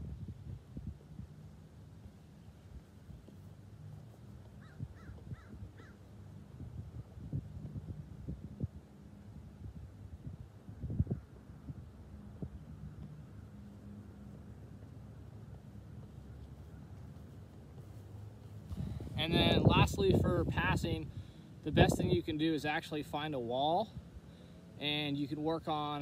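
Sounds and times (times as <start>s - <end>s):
low steady hum: 0.0s - 26.0s
soccer ball dribbled on grass: 2.2s - 8.0s, 12.3s - 19.2s
bird calls: 4.5s - 6.0s.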